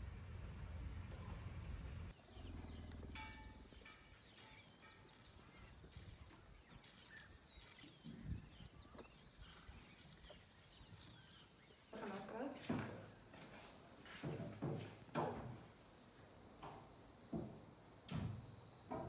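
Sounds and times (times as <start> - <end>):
insects trilling: 2.1 - 12.6.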